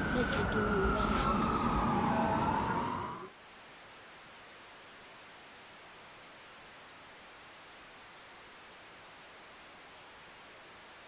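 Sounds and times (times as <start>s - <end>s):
white noise static hiss: 3.3s - 11.0s.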